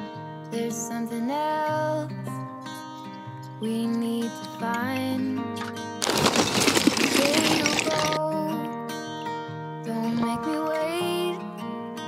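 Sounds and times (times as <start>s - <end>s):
acoustic guitar music with singing: 0.0s - 12.0s
charcoal clattering: 6.0s - 8.2s.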